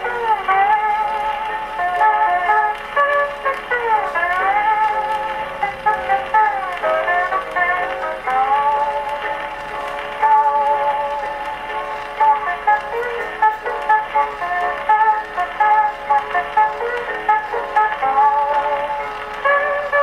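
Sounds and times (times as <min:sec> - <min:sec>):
plucked accompaniment: 0:00.0 - 0:20.0.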